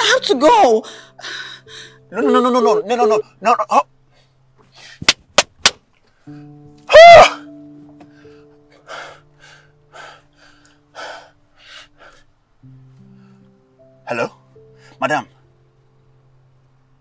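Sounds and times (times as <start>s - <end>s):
person crying out: 2.1s - 3.2s, 6.9s - 7.6s.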